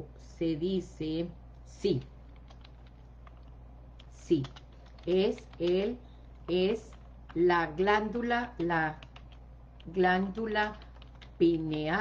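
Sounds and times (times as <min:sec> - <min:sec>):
low electrical hum: 0:00.0 - 0:12.0
computer keyboard typing: 0:02.2 - 0:12.0.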